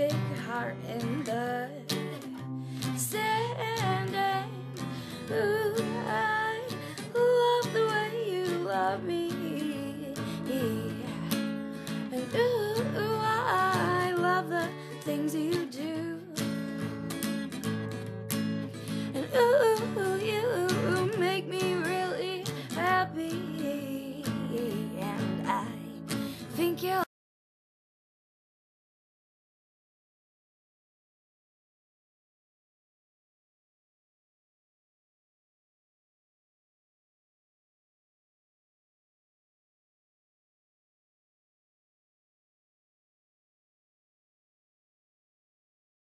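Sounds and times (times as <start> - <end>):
woman's wordless vocal melody: 0.0 - 11.4, 12.1 - 16.6, 19.0 - 27.1.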